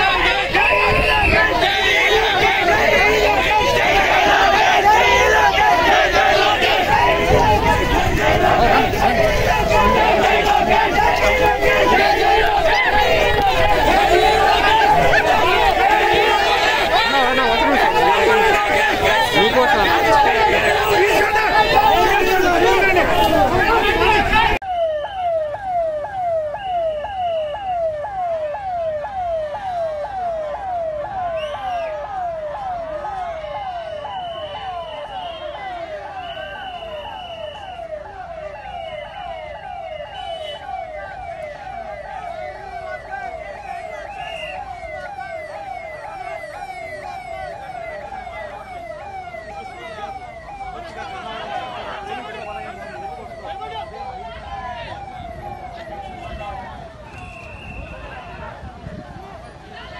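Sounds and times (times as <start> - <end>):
steady high siren tone: 0.0 - 59.6
vehicle siren fast yelp: 0.0 - 59.9.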